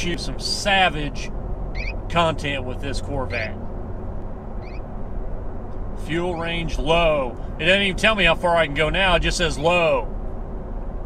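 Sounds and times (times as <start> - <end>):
car engine drone from inside cabin: 0.0 - 11.0.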